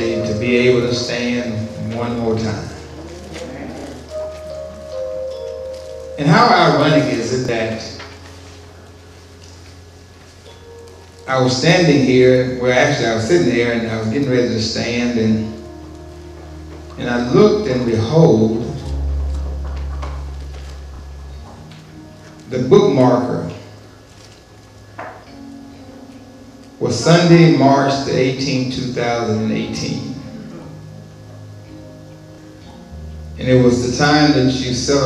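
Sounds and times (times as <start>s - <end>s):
low sustained musical note: 0.0s - 35.0s
soft keyboard chord: 0.0s - 35.0s.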